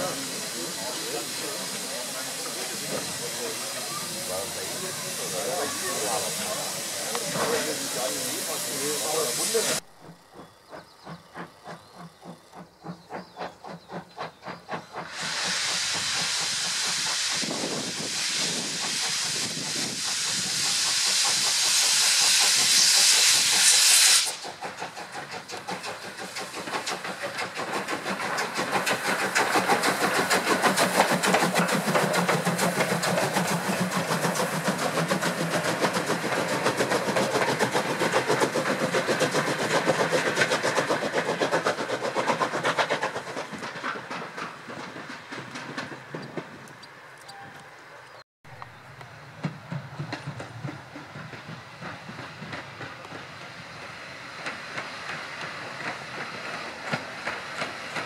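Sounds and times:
loud steam hiss: 0.0 - 9.8, 11.0 - 46.2, 49.4 - 58.0
steam locomotive chuffing: 0.0 - 47.8, 48.6 - 58.0
train wheel noise: 0.0 - 58.0.

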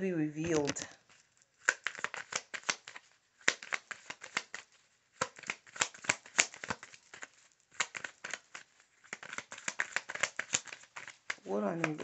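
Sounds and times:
cards being shuffled: 0.4 - 12.0.

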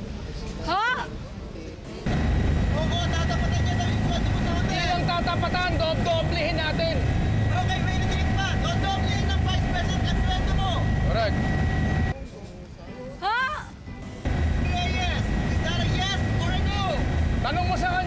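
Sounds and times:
faint steady whine: 1.9 - 12.2, 13.9 - 18.0
helicopter engine and rotor rumble: 1.9 - 12.2, 13.9 - 18.0.

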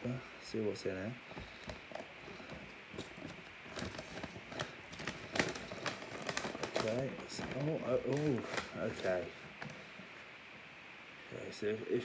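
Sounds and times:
sharp paper clicks: 1.4 - 9.8
paper envelope crinkling: 1.4 - 10.0.

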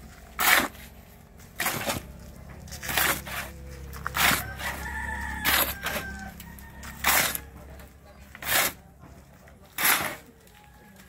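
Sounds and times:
shovel scraping through sand: 0.2 - 2.1, 2.7 - 4.8, 6.9 - 7.5, 8.2 - 8.8, 9.7 - 10.4
rooster crowing: 3.9 - 7.8.

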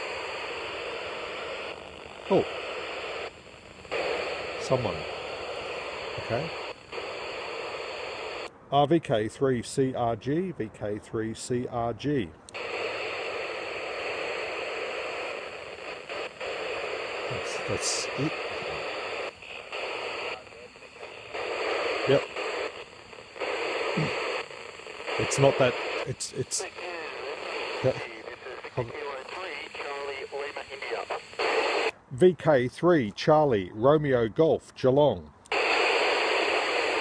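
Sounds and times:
radio receiver static hiss: 0.0 - 33.2, 35.4 - 37.0.

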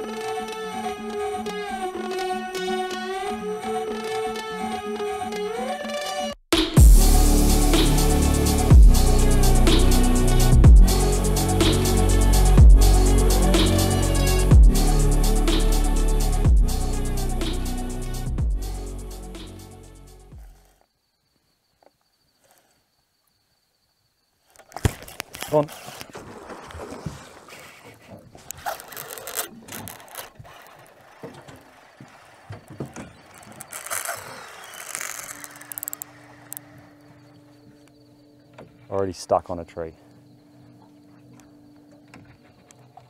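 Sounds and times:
background music: 0.0 - 20.4
fishing reel handling noise: 28.4 - 31.6, 33.0 - 36.7.

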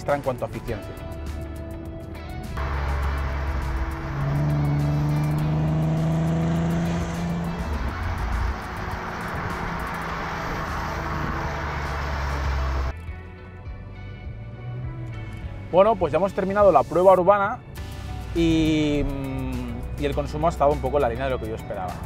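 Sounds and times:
road and wind rush: 1.0 - 22.0
car engine exhaust note: 2.6 - 15.8.

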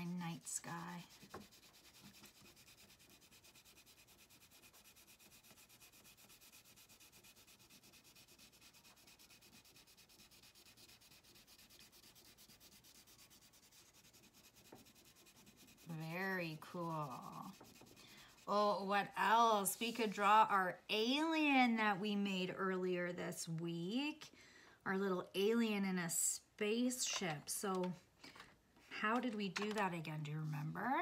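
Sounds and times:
woman speaking: 0.0 - 1.1, 15.9 - 17.6, 18.5 - 24.3, 24.9 - 28.0, 28.9 - 31.0
crayon rubbing on paper: 0.0 - 20.3.

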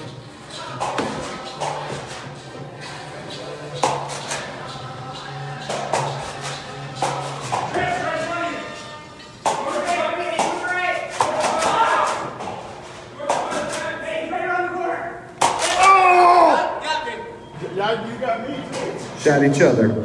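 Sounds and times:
background music: 0.0 - 13.8
indistinct voices: 0.0 - 19.6.

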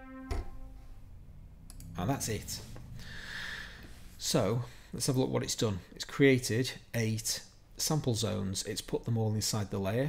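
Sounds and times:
synthesizer note: 0.0 - 1.2
thump: 0.2 - 0.6.

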